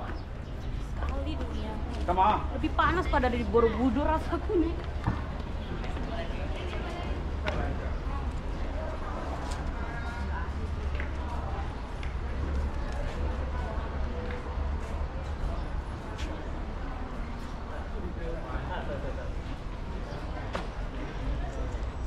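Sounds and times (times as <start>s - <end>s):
people talking in background: 0.0s - 22.0s.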